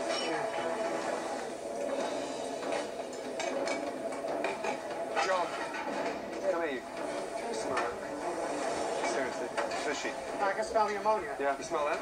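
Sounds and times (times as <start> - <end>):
busy kitchen background: 0.0 - 12.0
plates and utensils clinking: 1.8 - 11.1.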